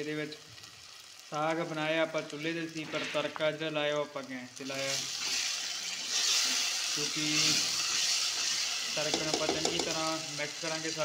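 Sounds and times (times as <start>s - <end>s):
hot oil sizzling: 0.0s - 11.0s.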